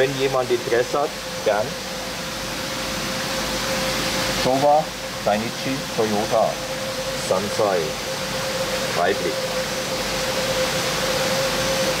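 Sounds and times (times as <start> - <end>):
mid-pitched hum: 0.0 - 12.0
rushing water circulation: 0.0 - 12.0.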